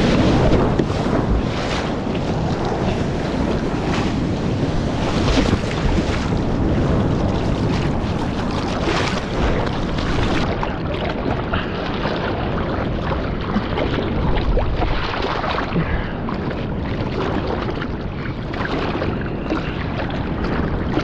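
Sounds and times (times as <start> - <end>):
seawater rushing and splashing: 0.0 - 21.0
wind buffeting microphone: 0.0 - 21.0.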